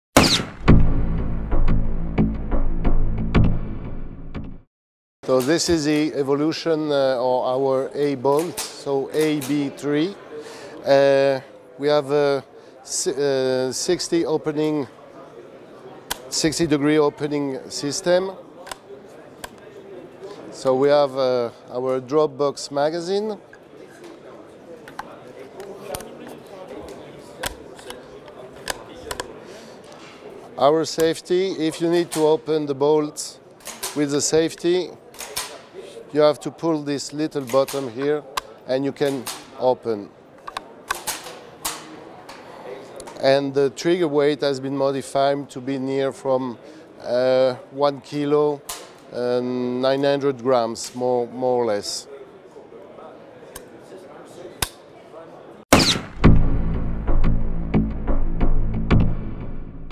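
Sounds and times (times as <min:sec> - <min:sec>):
outro music: 0:00.2 - 0:04.6, 0:55.7 - 0:59.9
murmur of chatter: 0:05.3 - 0:55.8.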